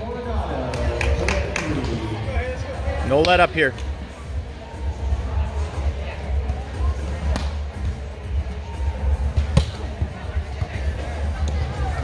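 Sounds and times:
volleyball slaps: 7.3s - 7.6s, 9.4s - 10.1s.

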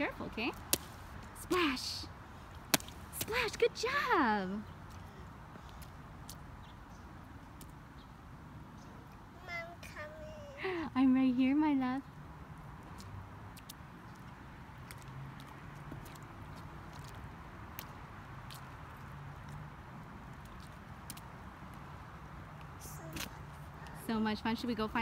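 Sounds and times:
light rain on wet pavement: 0.0s - 25.0s
water drips: 4.8s - 7.9s, 12.6s - 23.9s
high-pitched voice: 9.4s - 10.8s.

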